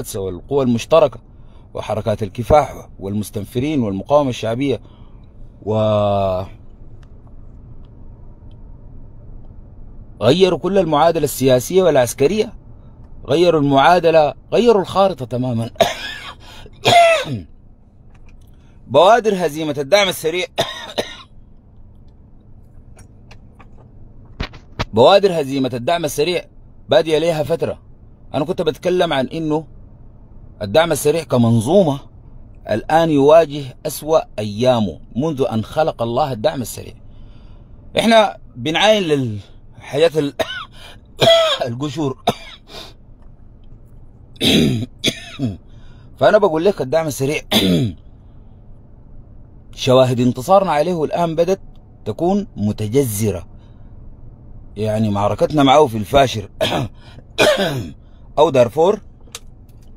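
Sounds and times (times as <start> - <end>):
man clearing his throat: 15.8 - 17.4, 20.6 - 21.2, 40.4 - 42.7, 44.4 - 45.6, 47.5 - 48.0, 56.6 - 58.0.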